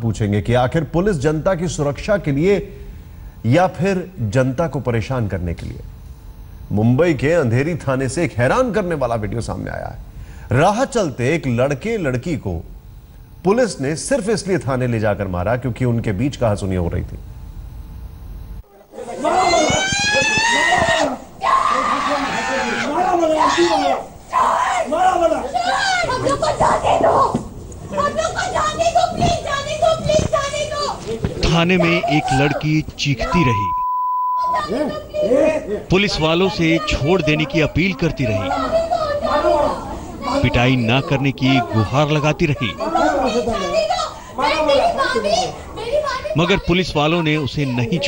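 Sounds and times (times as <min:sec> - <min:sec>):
woman screaming and wailing: 0:19.1 - 0:27.3
young woman pleading: 0:36.5 - 0:46.7.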